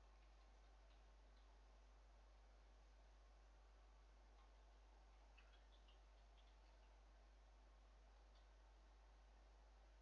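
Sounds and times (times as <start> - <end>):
faint ticks: 0.0 - 1.6, 4.3 - 7.1, 8.2 - 8.6.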